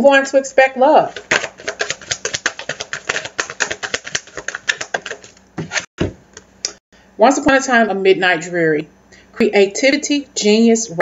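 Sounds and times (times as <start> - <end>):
cards being shuffled: 1.1 - 5.9.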